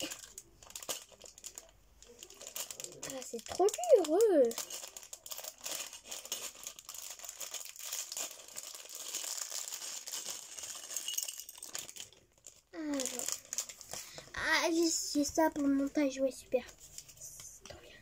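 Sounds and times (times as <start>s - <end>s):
plastic packaging crinkling: 0.0s - 16.1s.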